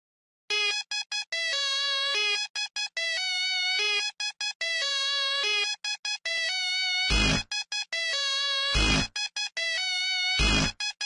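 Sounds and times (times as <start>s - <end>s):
synthesizer riff: 0.5s - 11.0s.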